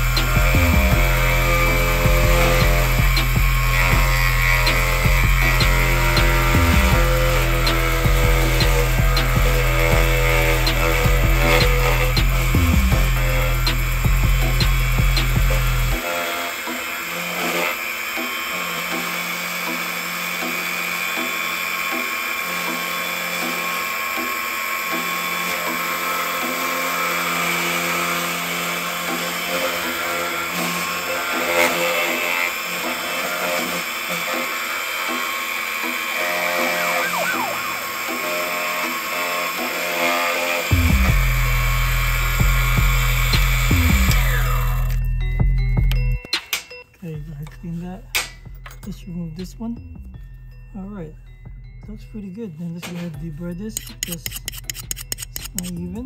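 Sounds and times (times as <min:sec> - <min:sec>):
key cutting machine running: 0:00.0 - 0:46.0.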